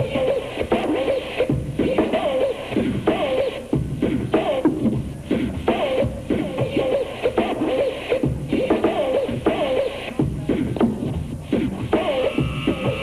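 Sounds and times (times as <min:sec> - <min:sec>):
hip-hop drum beat: 0:00.0 - 0:13.0
turntable scratching vocal snippet: 0:00.0 - 0:13.0.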